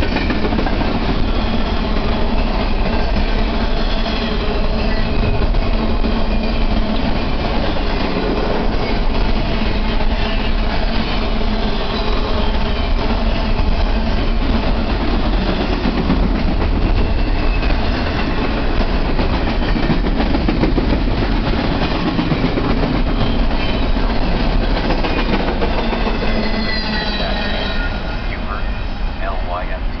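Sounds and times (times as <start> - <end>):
freight train wheels rumbling on rail: 0.0 - 30.0
high wheel squeals: 2.5 - 9.2, 9.8 - 14.4, 25.7 - 29.1.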